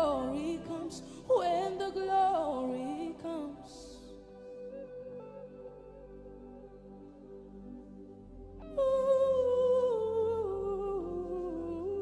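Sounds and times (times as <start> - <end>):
soft sustained backing chords: 0.0 - 12.0.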